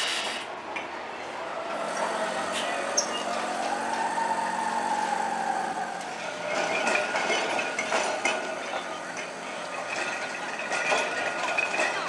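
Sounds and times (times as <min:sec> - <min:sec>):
tram rolling with whine: 0:00.0 - 0:12.0
wheels clacking over rail joints: 0:01.6 - 0:12.0.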